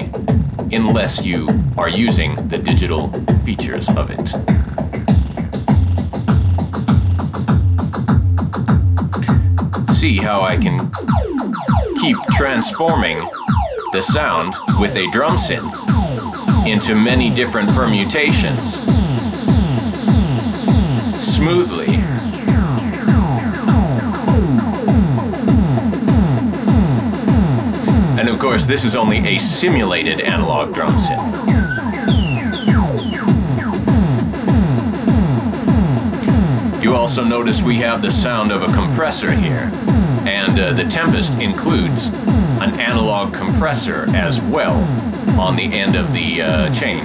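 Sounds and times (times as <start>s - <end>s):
electronic drum pattern: 0.0s - 47.0s
synth filter sweeping: 10.0s - 47.0s
steady low bass note: 13.9s - 47.0s.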